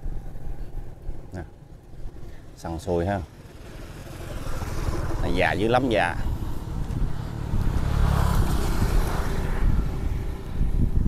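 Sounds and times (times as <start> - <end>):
vehicle engine approaching: 0.0 - 11.0.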